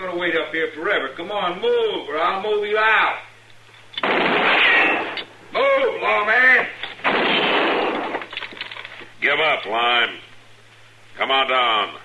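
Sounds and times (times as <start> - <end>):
gunshot: 4.0 - 5.2, 7.0 - 8.3.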